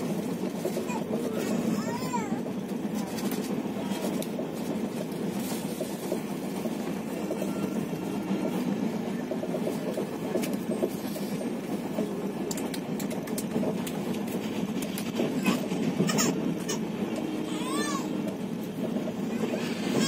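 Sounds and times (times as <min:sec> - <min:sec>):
train rumble and wheel clatter: 0:00.0 - 0:20.0.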